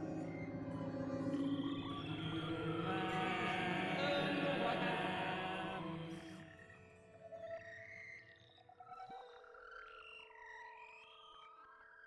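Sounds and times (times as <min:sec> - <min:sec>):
calm ambient music: 0:00.0 - 0:11.5.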